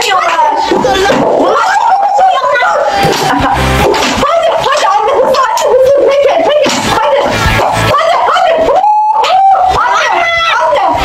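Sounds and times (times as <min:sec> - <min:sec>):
girls shouting excitedly: 0:00.0 - 0:03.1, 0:04.2 - 0:11.0.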